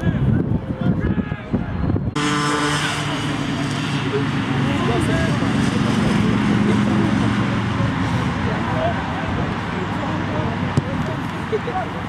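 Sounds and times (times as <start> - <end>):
steady engine-like hum: 1.5 - 12.0.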